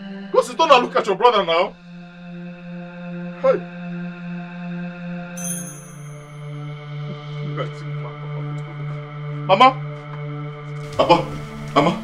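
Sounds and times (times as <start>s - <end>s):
held higher tones: 5.4s - 6.3s.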